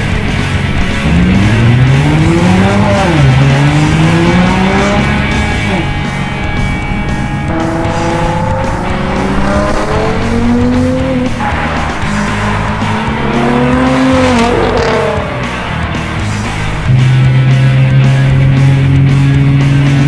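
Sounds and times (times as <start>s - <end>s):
car engine accelerating hard: 0.0s - 20.0s
music playing: 0.0s - 20.0s.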